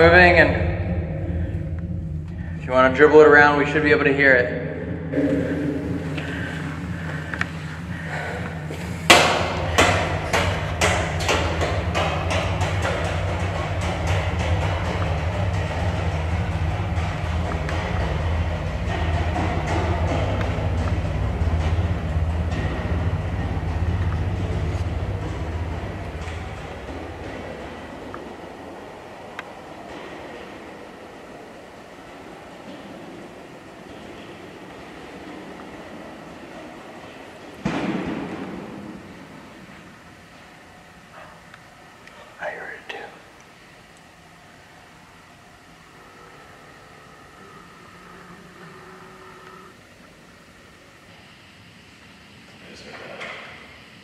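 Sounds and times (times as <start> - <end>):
ball rolling with echoing rumble: 0.0 - 41.9, 43.6 - 51.1.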